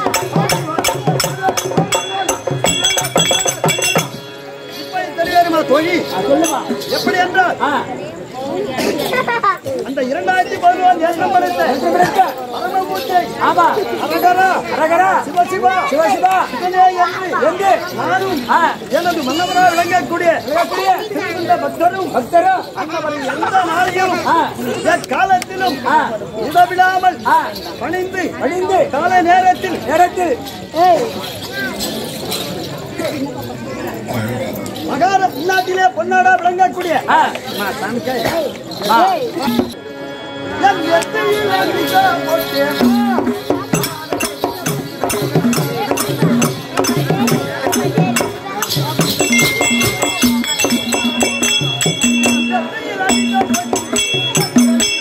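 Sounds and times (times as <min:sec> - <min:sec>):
barrel drum beating: 0:00.0 - 0:04.3, 0:42.8 - 0:55.0
metallic jingling: 0:00.0 - 0:39.8, 0:41.2 - 0:55.0
voices talking: 0:00.0 - 0:55.0.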